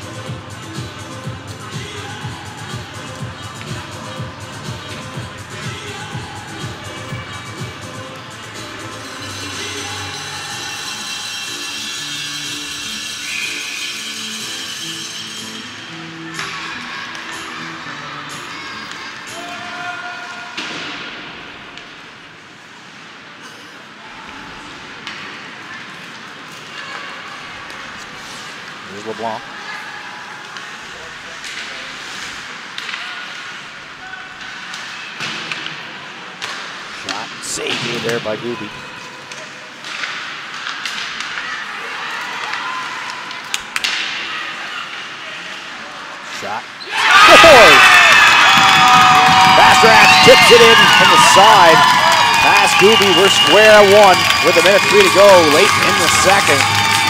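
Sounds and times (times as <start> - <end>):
voices in an arena: 0.0 - 57.0
hockey sticks and puck clacking: 31.4 - 33.7, 34.4 - 38.2, 39.0 - 44.3, 47.2 - 57.0.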